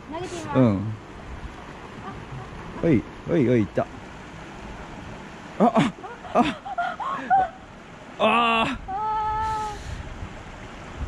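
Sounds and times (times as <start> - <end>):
woman crying out aah: 6.4 - 7.6, 8.2 - 9.8.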